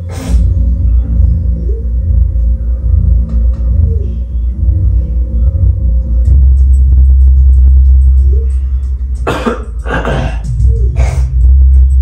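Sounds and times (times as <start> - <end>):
bass-heavy music: 0.0 - 12.0
person coughing: 9.2 - 11.4.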